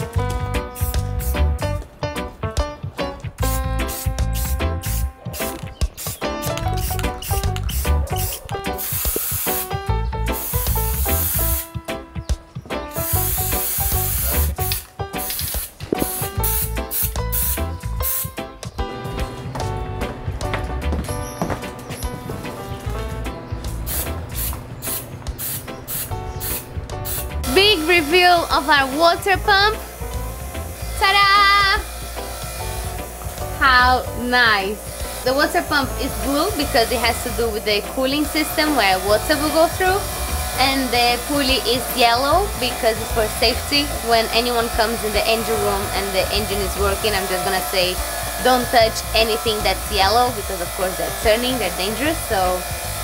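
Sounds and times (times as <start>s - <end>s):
background music with steady beat: 0.0s - 53.0s
spray paint can hissing: 0.6s - 1.6s, 3.4s - 11.8s, 12.9s - 18.4s, 23.6s - 33.5s, 34.5s - 53.0s.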